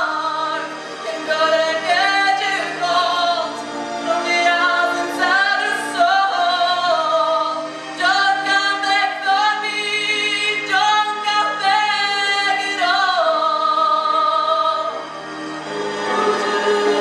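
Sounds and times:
woman singing with vibrato: 0.0 - 15.0.

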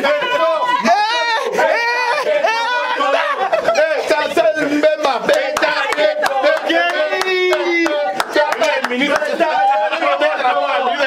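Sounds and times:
group chanting and shouting: 0.0 - 11.0
sharp claps: 5.3 - 9.4.

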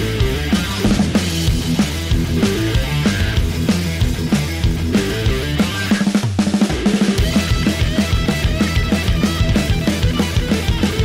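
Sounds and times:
bass: 0.0 - 11.0
rock music: 0.0 - 11.0
steady drum beat: 0.0 - 11.0.

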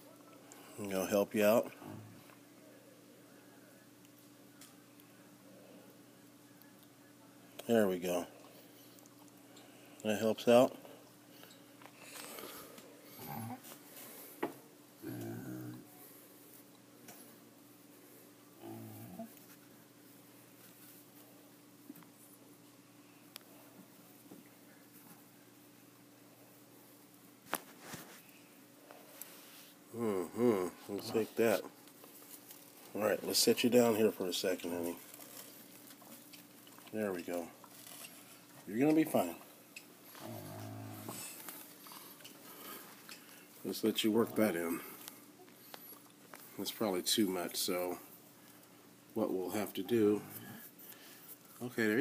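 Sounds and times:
faint steady hum: 0.0 - 52.0
man murmuring: 29.9 - 31.7.

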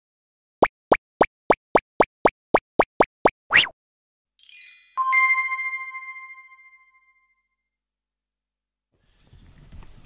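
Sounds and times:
cartoon plops: 0.6 - 3.8
rising bloop: 0.6 - 3.8.

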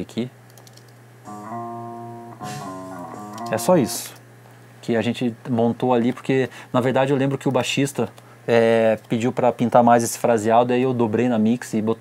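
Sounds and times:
electric bass with chorus: 1.3 - 4.1.

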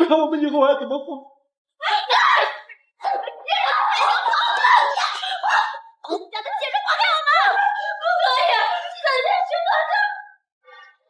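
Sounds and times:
women shouting angrily: 1.8 - 9.8.

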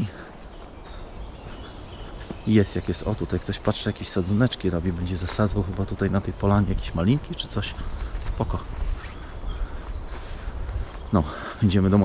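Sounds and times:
faint bird chirps: 0.0 - 12.0
wind rumbling on microphone: 0.0 - 12.0.

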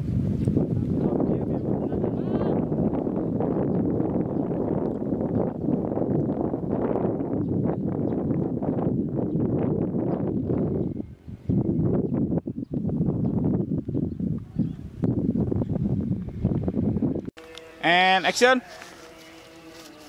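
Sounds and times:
wind buffeting microphone: 0.0 - 17.4.

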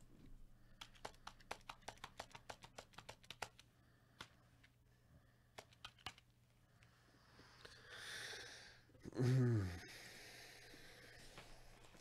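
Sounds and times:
faint keyboard clicks: 0.6 - 4.8, 5.5 - 6.9.

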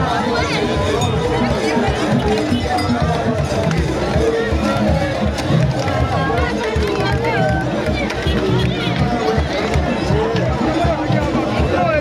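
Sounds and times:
crowd chanting and singing: 0.0 - 12.0
drums beating steadily: 0.0 - 12.0.

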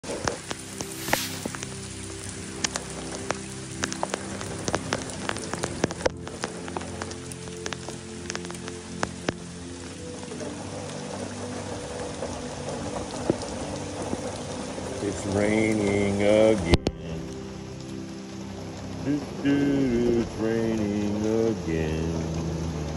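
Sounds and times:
rain falling: 0.0 - 22.9
raindrops ticking close by: 0.0 - 22.9
soft piano music: 0.0 - 22.9.

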